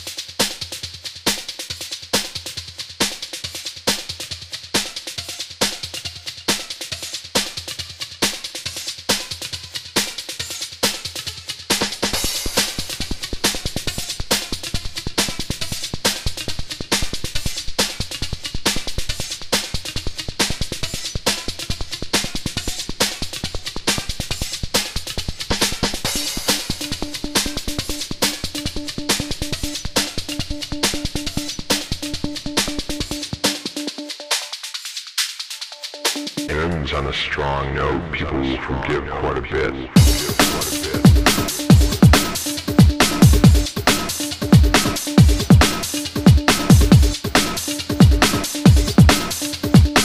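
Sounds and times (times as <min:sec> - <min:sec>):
fast breakbeat drum pattern: 0:00.0 - 0:50.0
deep bass part: 0:36.5 - 0:41.9.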